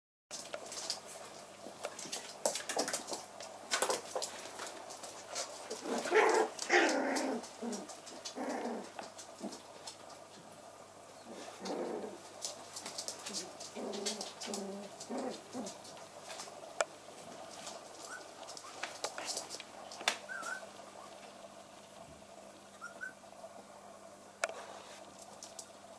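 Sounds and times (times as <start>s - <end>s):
claws clicking on wooden floor: 0.3s - 10.2s, 12.4s - 16.6s, 17.4s - 20.6s
puppies yelping: 18.0s - 18.8s, 20.2s - 20.7s, 22.7s - 23.2s.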